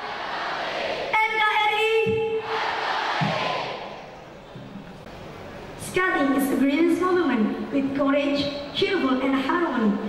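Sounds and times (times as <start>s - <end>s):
crowd shouting: 0.0s - 1.2s, 2.3s - 4.1s.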